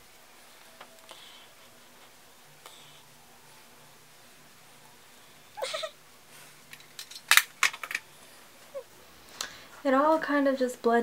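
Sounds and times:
makeup containers clicking and clattering: 6.7s - 8.0s.

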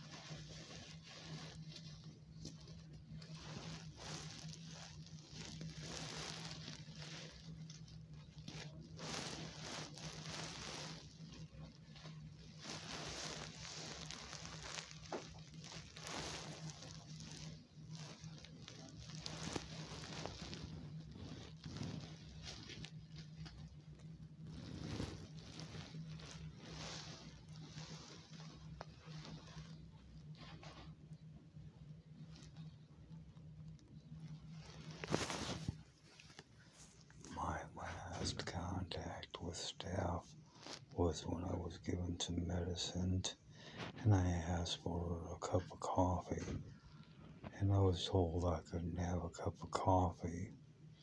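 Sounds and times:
fabric rustling on microphone: 0.0s - 51.0s
steady low hum: 0.0s - 51.0s.

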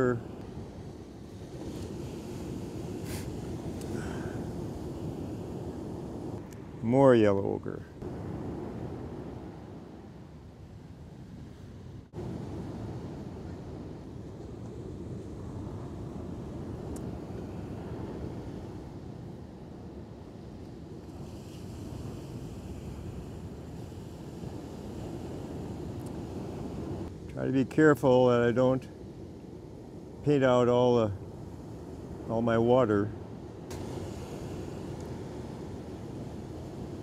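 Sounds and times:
ocean surf rushing: 0.0s - 37.0s.

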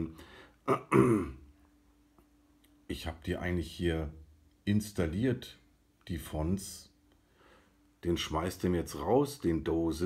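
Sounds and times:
faint steady hum: 0.0s - 10.0s
man clearing throat: 0.7s - 1.5s.

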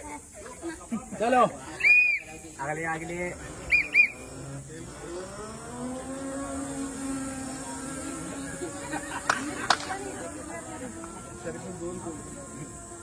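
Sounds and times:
electric motor whining: 2.4s - 13.0s.

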